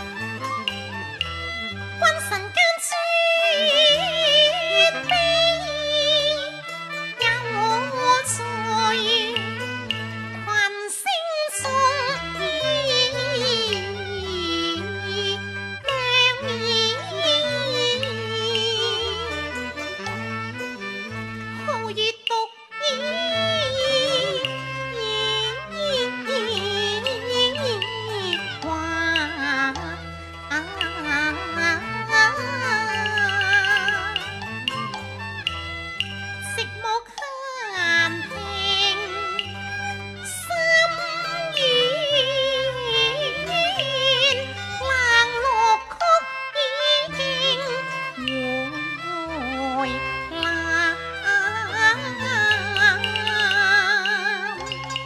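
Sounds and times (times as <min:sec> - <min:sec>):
instrumental accompaniment: 0:00.0 - 0:55.0
woman singing opera: 0:02.0 - 0:06.6, 0:07.2 - 0:09.5, 0:10.4 - 0:19.5, 0:21.7 - 0:34.3, 0:36.4 - 0:39.4, 0:40.3 - 0:55.0.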